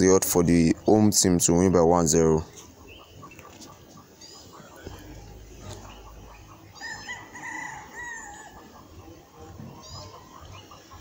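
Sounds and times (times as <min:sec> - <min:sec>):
rooster crowing: 0:06.8 - 0:08.8.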